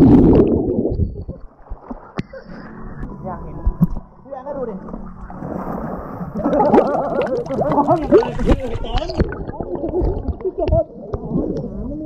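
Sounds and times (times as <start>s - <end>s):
pool water splashing and gurgling: 0.0s - 3.0s, 4.8s - 12.0s.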